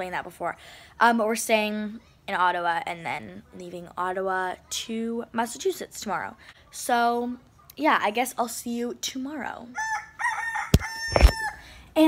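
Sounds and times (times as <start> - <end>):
rooster crowing: 9.8 - 11.7.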